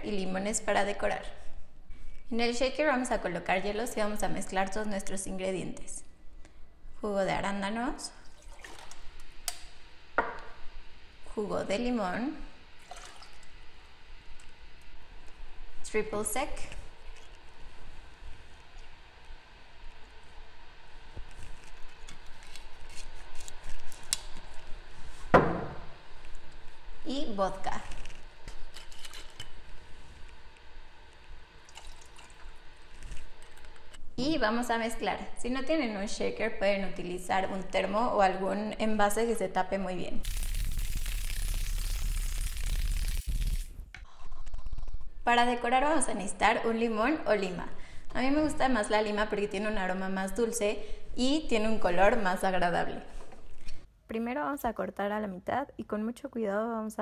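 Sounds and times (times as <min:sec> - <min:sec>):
glass bottle set down knock: 0:10.2 - 0:10.5, 0:25.3 - 0:25.8.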